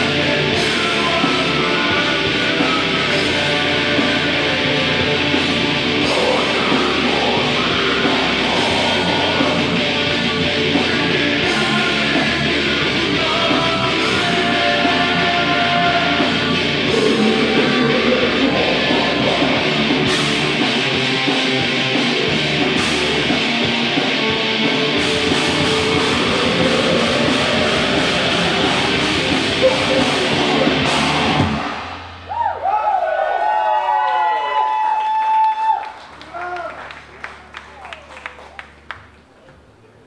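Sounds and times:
vocalist singing: 0.0 - 21.0, 24.9 - 31.8
distorted electric guitars: 0.0 - 32.3
bass guitar: 0.0 - 33.7
drums: 0.0 - 36.6.

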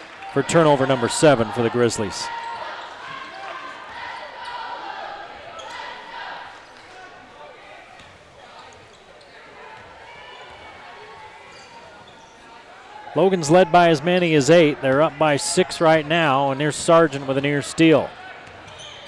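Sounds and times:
murmur of crowd and voices: 0.0 - 19.0.

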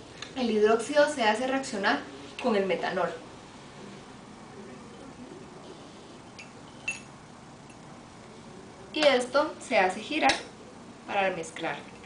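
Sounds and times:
glass beakers clinking: 6.3 - 7.1.

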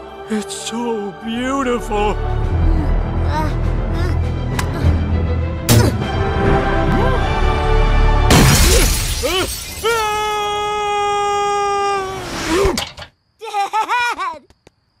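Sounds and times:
loud crash: 8.3 - 10.0
man yelling: 9.3 - 12.2.

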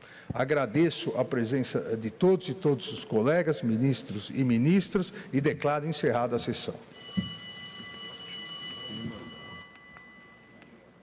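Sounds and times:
high buzzer-like tone: 6.9 - 10.6.

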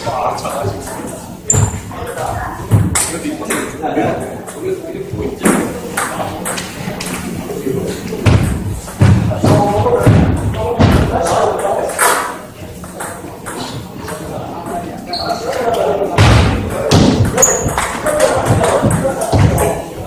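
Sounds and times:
footsteps thudding on floor: 8.2 - 11.1.

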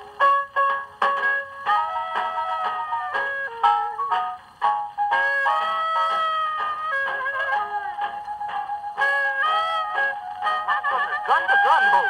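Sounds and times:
jazz on a gramophone: 0.0 - 12.0.

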